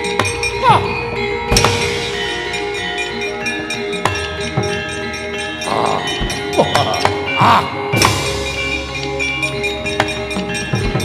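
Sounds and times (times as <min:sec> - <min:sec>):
gamelan metallophones and gongs: 0:00.0 - 0:11.0.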